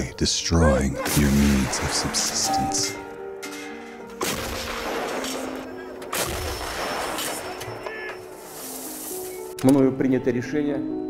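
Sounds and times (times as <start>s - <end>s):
soft background music: 0.0s - 11.0s
artillery guns firing: 4.2s - 8.0s.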